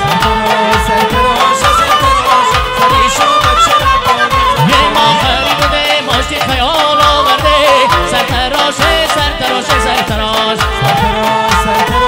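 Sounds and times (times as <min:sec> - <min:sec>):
band music with drum beat: 0:00.0 - 0:12.0
man singing ornamented melody: 0:00.1 - 0:12.0.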